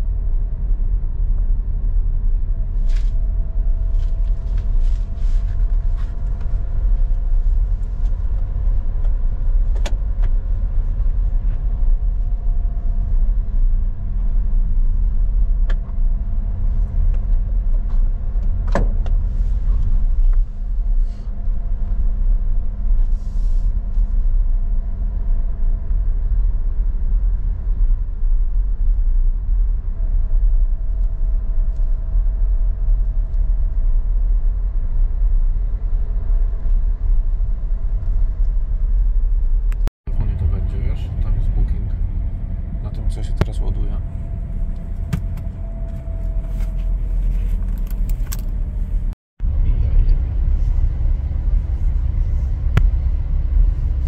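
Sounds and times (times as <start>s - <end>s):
car engine and tyre rumble: 0.0s - 54.0s
faint running hum: 0.0s - 54.0s.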